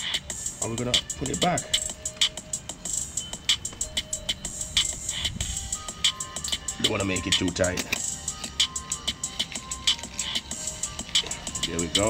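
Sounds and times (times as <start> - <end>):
background music with ticking beat: 0.0 - 12.0.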